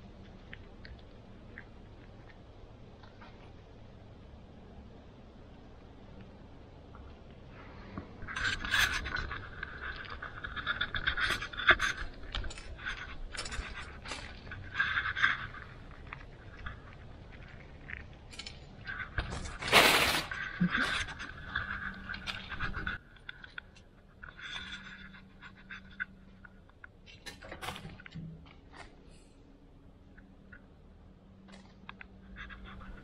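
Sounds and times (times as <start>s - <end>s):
chipmunks scrabbling: 6.8s - 29.0s
seeds rattling on stone: 8.2s - 26.4s.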